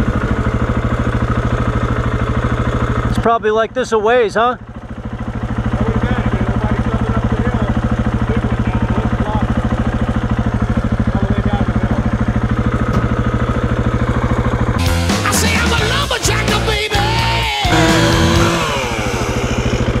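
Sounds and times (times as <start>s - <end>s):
motorcycle engine idling: 0.0s - 14.8s, 17.7s - 20.0s.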